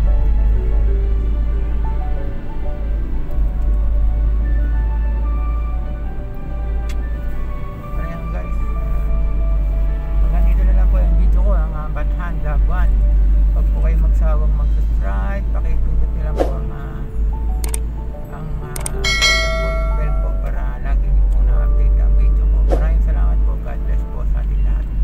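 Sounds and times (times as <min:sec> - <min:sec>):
background music with singing: 0:00.0 - 0:25.0
bright bell chime: 0:19.0 - 0:20.8.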